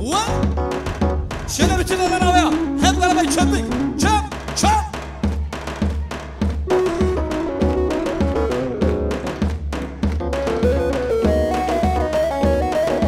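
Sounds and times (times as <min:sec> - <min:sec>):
keyboard melody: 0:00.0 - 0:04.4, 0:06.6 - 0:13.0
drum beat: 0:00.0 - 0:13.0.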